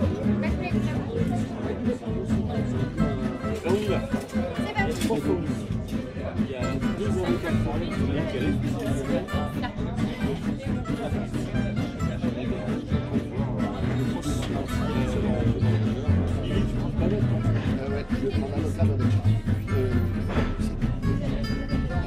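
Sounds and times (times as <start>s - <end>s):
acoustic gypsy jazz music: 0.0s - 22.0s
diners chattering: 0.0s - 22.0s.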